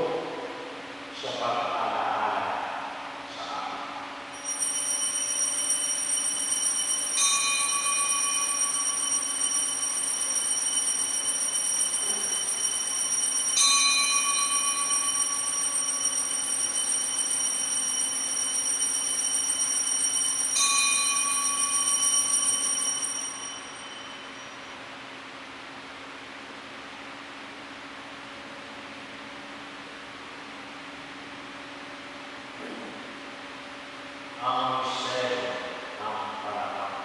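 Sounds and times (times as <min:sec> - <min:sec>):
altar bells ringing: 0:04.4 - 0:24.8.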